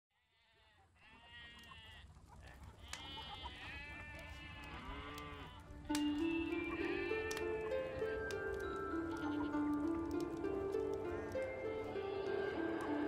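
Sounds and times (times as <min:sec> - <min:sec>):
sheep bleating: 0:00.2 - 0:10.2, 0:11.2 - 0:13.0.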